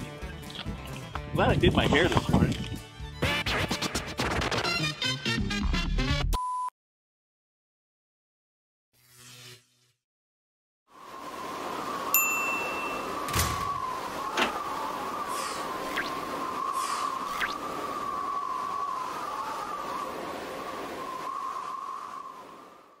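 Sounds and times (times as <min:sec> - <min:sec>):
bright ding: 0:12.2 - 0:13.2.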